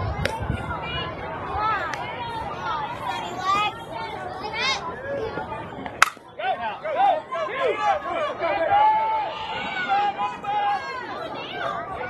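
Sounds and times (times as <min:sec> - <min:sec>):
spectators shouting and cheering: 0:00.0 - 0:12.0
bat cracking ball: 0:06.0 - 0:06.2.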